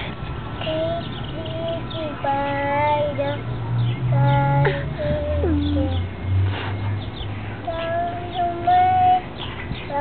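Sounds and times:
toddler girl singing wordlessly: 0:00.6 - 0:06.2, 0:07.6 - 0:10.0.

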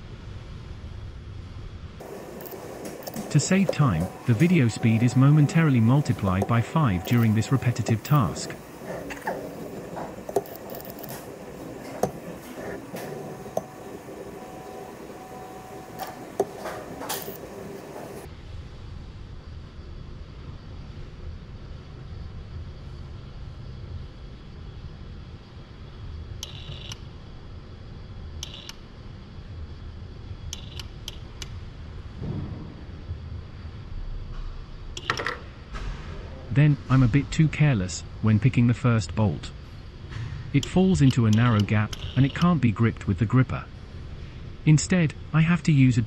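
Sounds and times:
low steady machine hum: 0:00.0 - 0:46.0.

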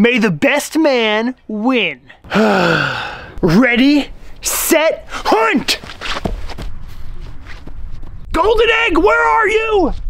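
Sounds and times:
rustling rumbling noise: 0:04.1 - 0:08.4
footsteps running on grass: 0:05.6 - 0:08.3.

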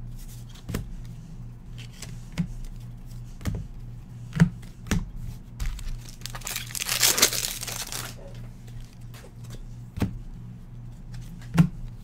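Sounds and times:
wrapper crinkling and tearing: 0:05.7 - 0:08.2.

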